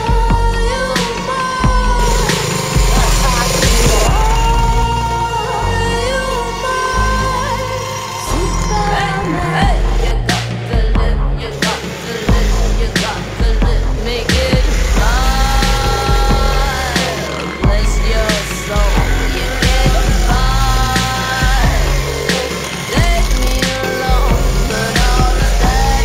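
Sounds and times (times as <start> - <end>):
music with heavy bass line: 0.0 - 26.0.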